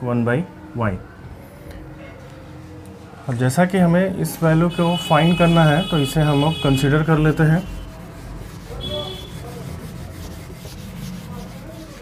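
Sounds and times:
eraser rubbing on whiteboard: 0:07.1 - 0:12.0.

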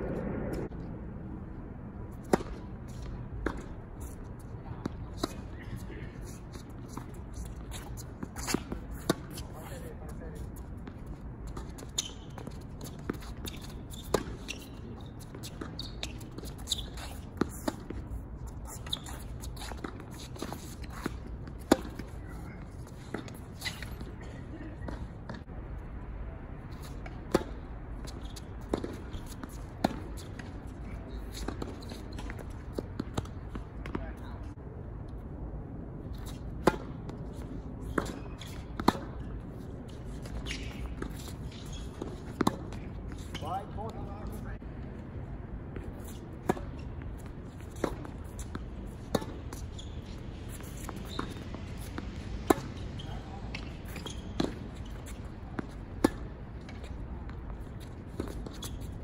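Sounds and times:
tennis ball bouncing on court: 0:02.2 - 0:03.8, 0:04.8 - 0:05.5, 0:10.8 - 0:18.0, 0:18.7 - 0:22.2, 0:26.7 - 0:30.6, 0:36.1 - 0:44.3, 0:45.8 - 0:58.9.

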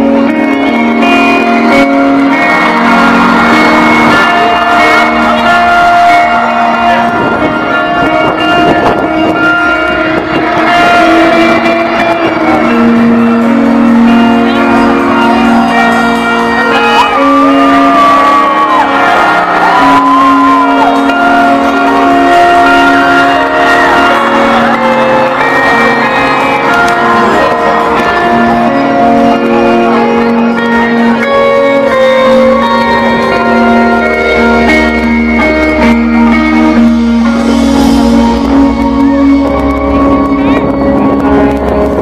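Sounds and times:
held keyboard chords: 0:00.0 - 0:42.0
high wavering note: 0:00.0 - 0:42.0
live rock band over loudspeakers: 0:00.0 - 0:42.0.

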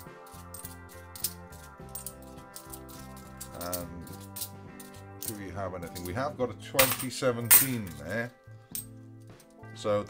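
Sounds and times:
coins clicking together: 0:00.0 - 0:06.1
background music: 0:00.0 - 0:10.0.

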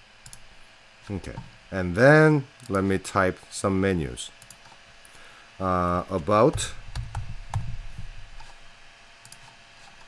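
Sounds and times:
keyboard and mouse clicks: 0:09.2 - 0:10.0.

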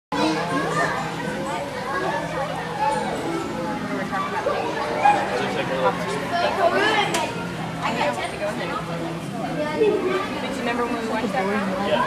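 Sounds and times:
children and adults chattering: 0:00.1 - 0:12.0.

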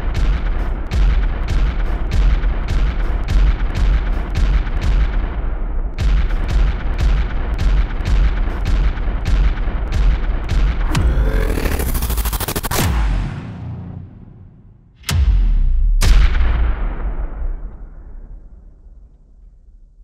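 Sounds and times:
rotary engine booming firing strokes: 0:10.7 - 0:14.6
rising engine whine: 0:10.9 - 0:12.9.

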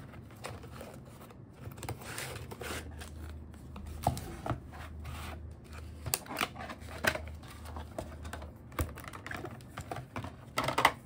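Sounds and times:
stiff plastic clicking and crinkling: 0:05.6 - 0:11.0.

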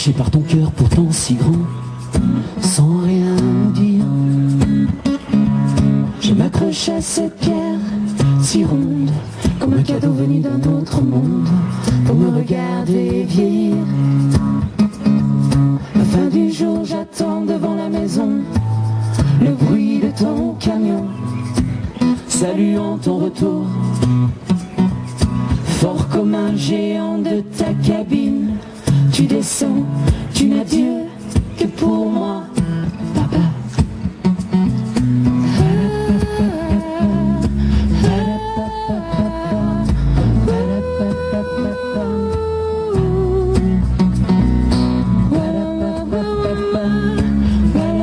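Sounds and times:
drums: 0:00.0 - 0:48.0
strummed acoustic guitar: 0:00.0 - 0:48.0
wordless melodic vocal line: 0:00.0 - 0:48.0
electric guitar: 0:00.8 - 0:48.0.

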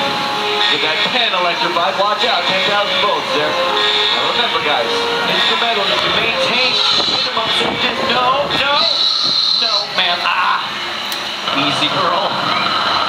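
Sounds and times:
crowd chatter: 0:00.0 - 0:13.0
dinosaur costume calls: 0:05.2 - 0:07.6, 0:08.2 - 0:10.7
high hiss: 0:08.7 - 0:13.0.

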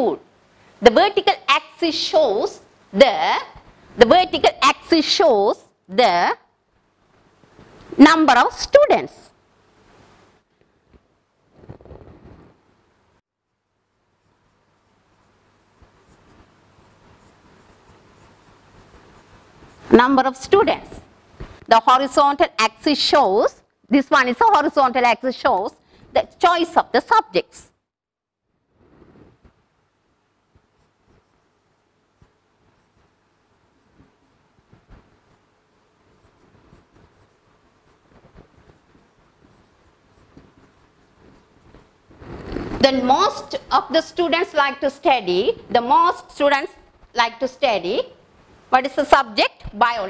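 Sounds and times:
stylus scratching and tapping on screen: 0:10.6 - 0:12.6, 0:13.8 - 0:27.5, 0:28.7 - 0:48.2.

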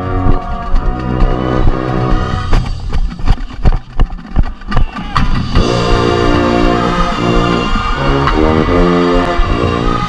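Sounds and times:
tuba low notes: 0:00.0 - 0:02.6, 0:05.5 - 0:10.0
marching band playing: 0:00.0 - 0:03.6, 0:05.2 - 0:10.0.

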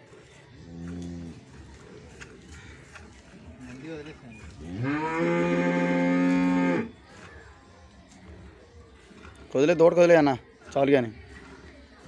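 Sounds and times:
buffalo mooing: 0:04.7 - 0:06.9.

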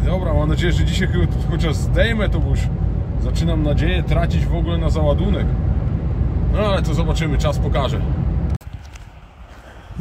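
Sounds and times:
engine and road noise in vehicle: 0:00.0 - 0:10.0
quiet outdoor background noise: 0:04.4 - 0:10.0.

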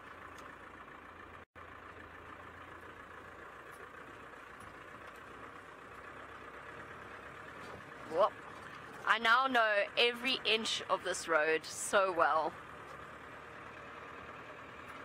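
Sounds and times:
vehicle engine and road noise: 0:00.0 - 0:15.0.

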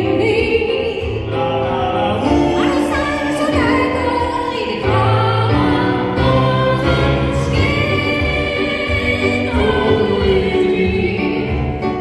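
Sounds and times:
woman singing through loudspeakers: 0:00.0 - 0:01.3, 0:02.4 - 0:11.9
instrumental accompaniment: 0:00.0 - 0:12.0.

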